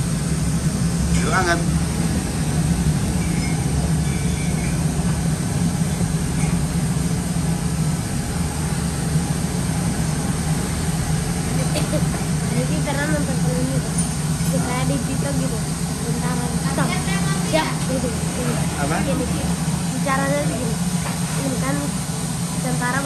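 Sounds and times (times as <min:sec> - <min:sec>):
low engine hum: 0:00.0 - 0:23.0.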